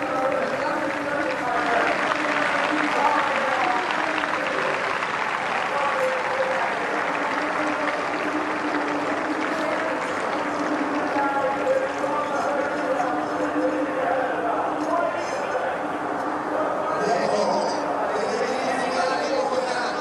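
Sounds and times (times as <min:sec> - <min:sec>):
stadium crowd voices: 0:00.0 - 0:20.0.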